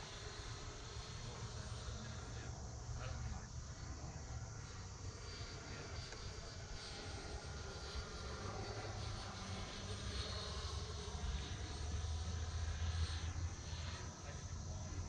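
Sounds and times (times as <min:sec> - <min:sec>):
model jet fan whine: 0:00.0 - 0:15.0.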